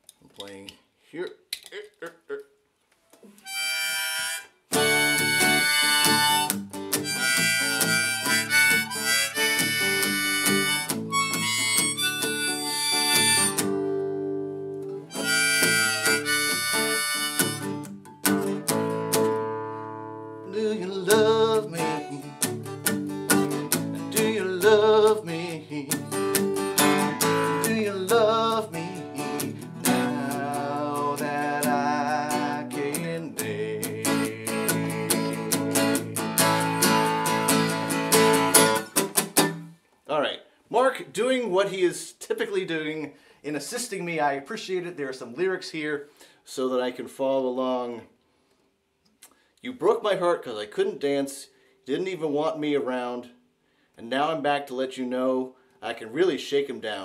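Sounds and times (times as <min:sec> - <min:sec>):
harmonica: 0:03.4 - 0:13.9, 0:15.0 - 0:18.4, 0:26.1 - 0:31.0, 0:34.0 - 0:39.0
strummed acoustic guitar: 0:03.4 - 0:39.7.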